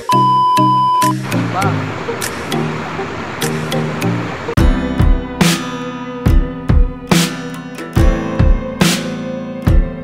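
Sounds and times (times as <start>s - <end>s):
high test-tone beep: 0.0s - 1.2s
background music with a beat: 0.0s - 2.7s, 3.4s - 10.0s.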